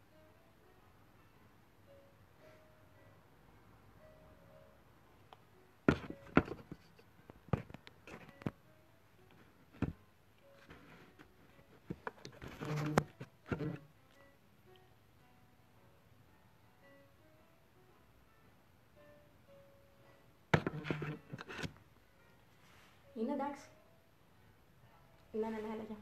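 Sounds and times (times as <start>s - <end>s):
faint background music: 0.0s - 26.0s
phone handling knocks and rustles: 20.6s - 21.7s.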